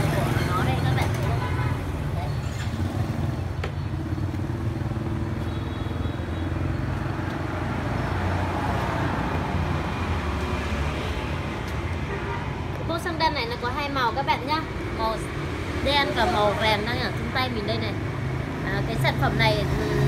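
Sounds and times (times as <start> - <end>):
road traffic rumble: 0.0 - 20.0.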